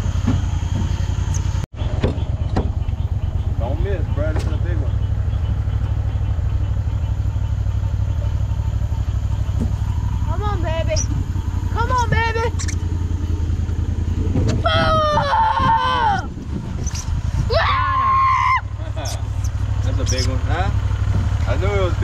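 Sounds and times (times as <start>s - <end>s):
boat motor idling: 0.0s - 22.0s.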